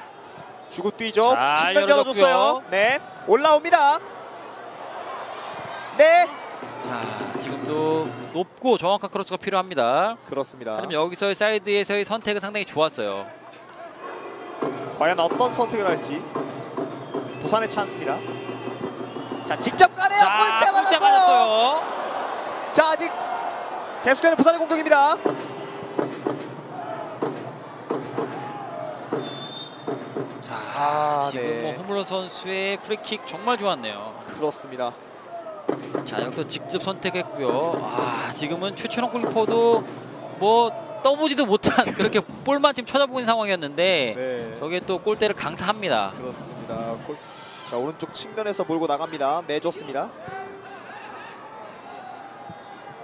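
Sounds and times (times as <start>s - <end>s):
stadium crowd noise: 0.0s - 53.0s
distant voices and shouts: 13.2s - 25.8s, 30.4s - 41.5s
sharp knocks: 14.6s - 19.9s, 25.1s - 30.5s, 35.7s - 36.8s.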